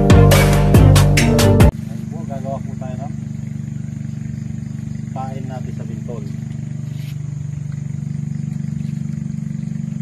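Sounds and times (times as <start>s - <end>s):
machine humming with fast pulse: 1.7s - 10.0s
voices: 1.8s - 3.4s, 4.0s - 7.2s.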